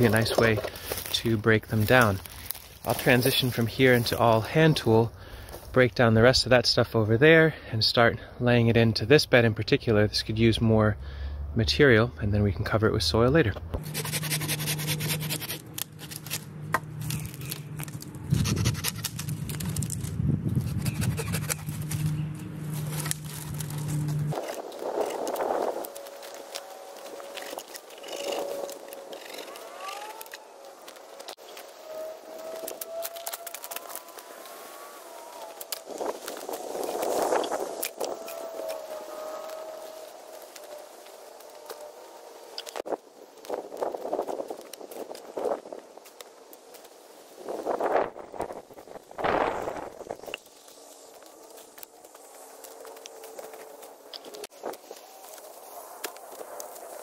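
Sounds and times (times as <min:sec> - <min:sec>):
branches snapping and cracking: 0:00.0 - 0:03.5, 0:14.8 - 0:47.8, 0:48.4 - 0:57.0
brush scraping and rustling: 0:00.0 - 0:04.6, 0:13.8 - 0:57.0.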